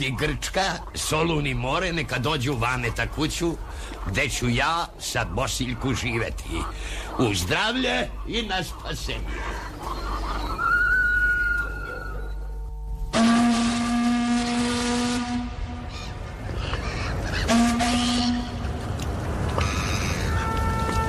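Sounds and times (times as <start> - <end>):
steam whistle blasts: 13.1 - 15.9, 17.5 - 18.5.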